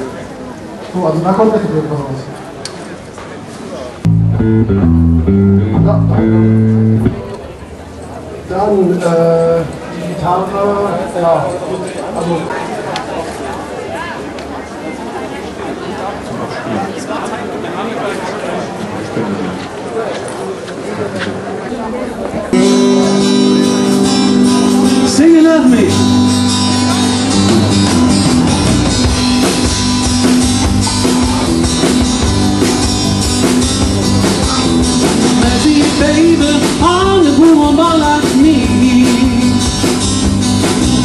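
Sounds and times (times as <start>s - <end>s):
crowd chatter: 0.0s - 41.0s
drum kit: 4.1s - 7.4s, 22.6s - 41.0s
amplified electric guitar chord: 4.1s - 7.6s, 22.6s - 31.6s
band playing: 4.1s - 7.9s, 22.5s - 41.0s.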